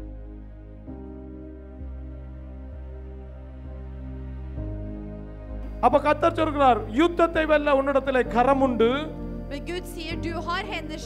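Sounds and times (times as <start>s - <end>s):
soft sustained background chords: 0.0s - 11.0s.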